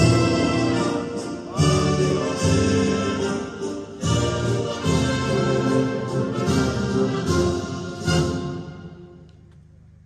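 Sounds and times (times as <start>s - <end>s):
orchestral anthem with brass: 0.0s - 9.2s.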